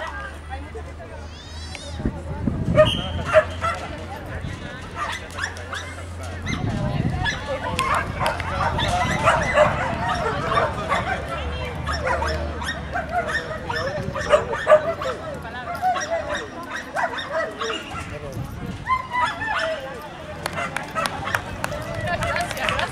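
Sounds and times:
people's voices: 0.0 - 22.9
dogs barking and yipping: 2.7 - 4.1, 4.8 - 22.9.

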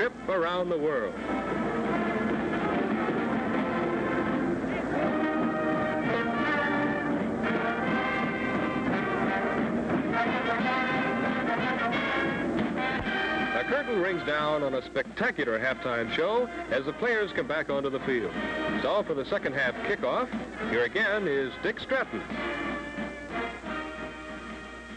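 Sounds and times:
marching band playing: 0.0 - 24.9.

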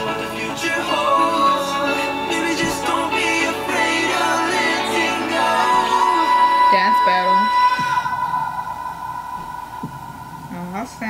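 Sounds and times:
vocal call: 0.0 - 10.7
pop music held note: 0.0 - 10.8.

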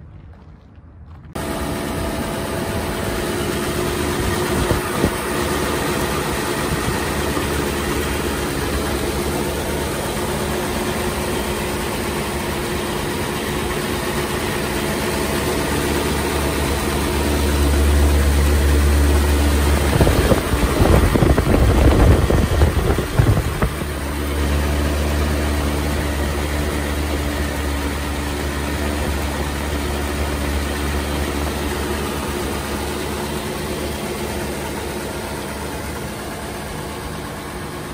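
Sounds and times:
car engine idling: 1.2 - 37.9.

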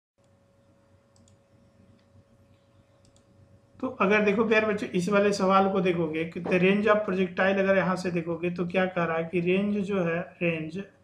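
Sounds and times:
faint steady hum: 0.2 - 11.0
computer mouse clicks: 1.1 - 3.3
man talking: 3.8 - 11.0.

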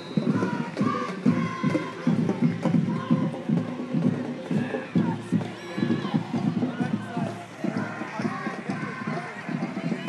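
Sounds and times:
parade drums beating: 0.0 - 10.0
voices: 0.0 - 10.0.

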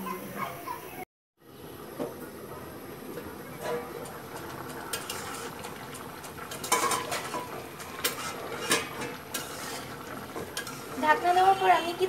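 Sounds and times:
metal spatula scraping pan: 4.9 - 5.6, 6.5 - 11.7.

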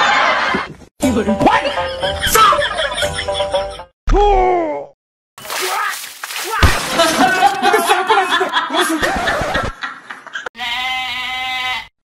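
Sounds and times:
person's voice: 5.6 - 9.2
sheep bleating: 10.6 - 11.9.

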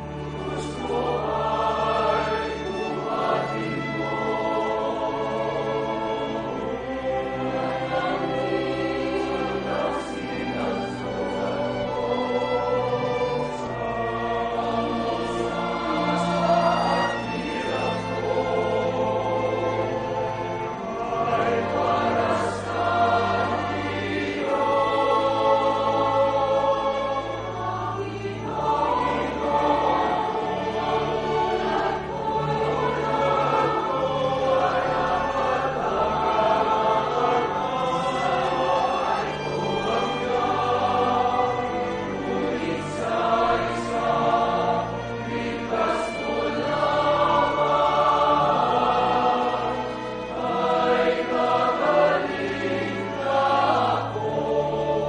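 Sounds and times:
church choir singing a hymn: 0.0 - 55.0.

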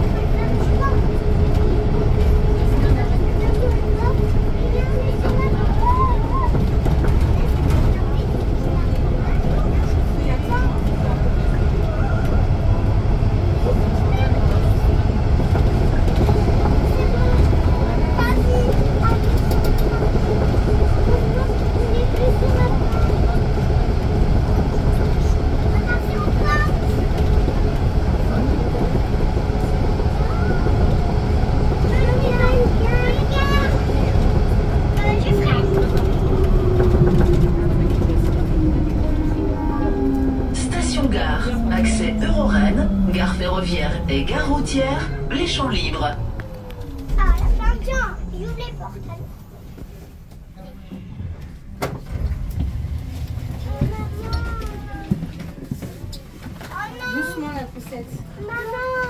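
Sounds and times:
metro train rumbling in tunnel: 0.0 - 59.0.

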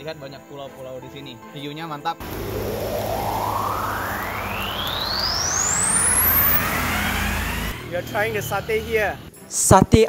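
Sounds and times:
low steady hum: 2.2 - 7.8
rushing noise: 2.2 - 7.9
synthetic rising tone: 2.2 - 7.9.

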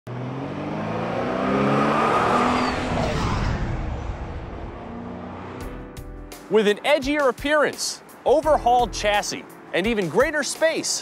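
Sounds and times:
car engine passing by: 0.1 - 6.1.

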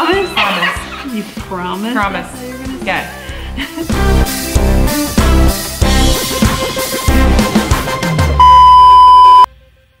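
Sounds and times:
background music: 0.0 - 8.6
steady electronic beep: 8.4 - 9.5.

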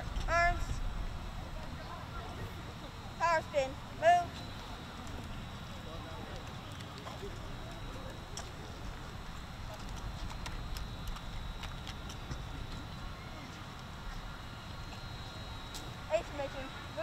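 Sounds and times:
wind rumbling on microphone: 0.0 - 3.1, 6.8 - 17.0.

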